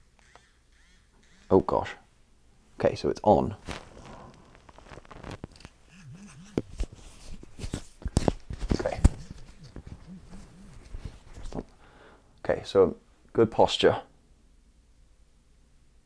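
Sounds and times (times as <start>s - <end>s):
clothing rustle: 2.7s - 11.8s.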